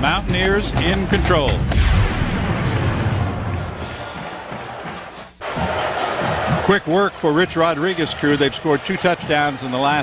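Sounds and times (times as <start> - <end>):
announcer speaking: 0.0 - 1.6
crowd noise: 2.4 - 10.0.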